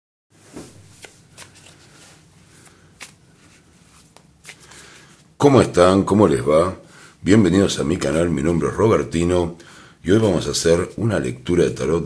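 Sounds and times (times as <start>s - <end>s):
cards sliding when shuffled: 0.5s - 5.3s.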